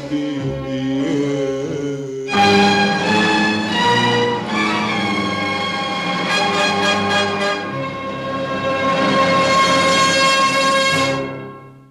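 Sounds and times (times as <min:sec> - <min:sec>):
orchestra holding a sustained chord: 0:02.3 - 0:11.8.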